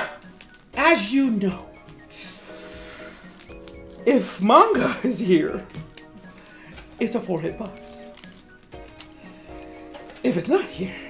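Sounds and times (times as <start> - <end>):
soft background music: 0.0 - 11.0
foil pack being ripped open: 3.2 - 4.2, 5.5 - 6.5, 7.7 - 9.2.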